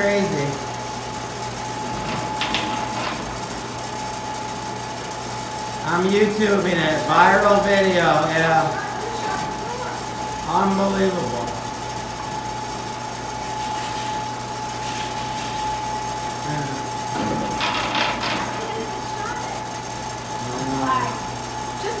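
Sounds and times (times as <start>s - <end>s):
sliding door drive whining: 1.3s - 4.9s, 17.1s - 19.1s.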